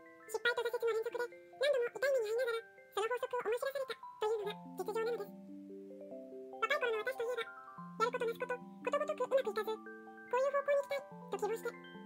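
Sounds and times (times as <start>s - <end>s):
music box melody: 0.0s - 12.0s
person narrating: 0.3s - 5.4s, 6.6s - 11.8s.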